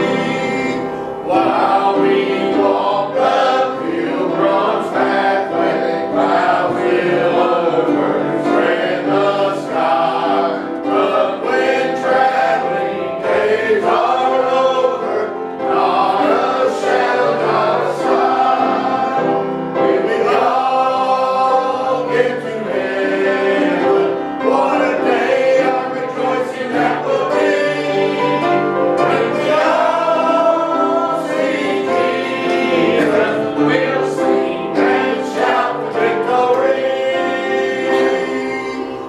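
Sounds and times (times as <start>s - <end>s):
congregation singing a hymn: 0.0s - 39.0s.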